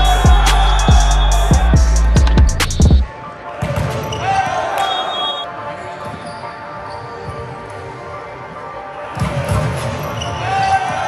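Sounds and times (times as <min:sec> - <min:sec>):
shoes squeaking on court: 0:03.7 - 0:08.2, 0:09.2 - 0:11.0.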